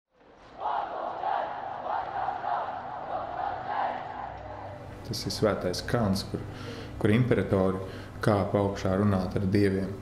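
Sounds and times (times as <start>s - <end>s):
voices chanting in unison: 0.5s - 5.0s.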